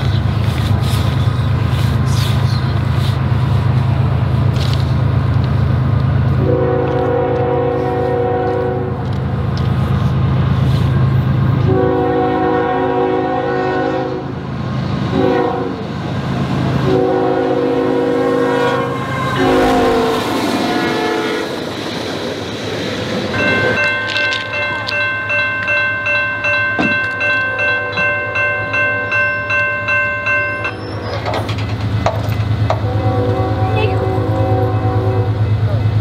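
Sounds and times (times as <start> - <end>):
train rumbling past: 0.0 - 36.0
locomotive horn blasts: 6.4 - 9.0, 11.6 - 14.3, 15.1 - 15.8, 16.8 - 21.6, 32.7 - 35.6
bell ringing steadily: 23.3 - 30.9.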